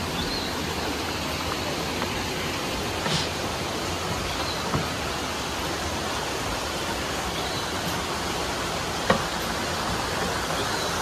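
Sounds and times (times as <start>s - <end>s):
water rushing: 0.0s - 11.0s.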